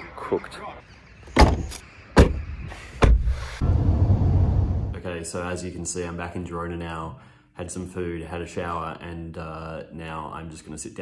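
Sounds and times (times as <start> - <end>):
car tailgate clunks: 1.4 - 2.4.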